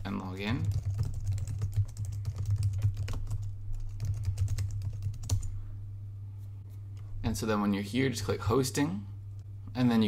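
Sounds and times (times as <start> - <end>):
steady low hum: 0.0 - 10.0
fast typing on keyboard: 0.1 - 5.5.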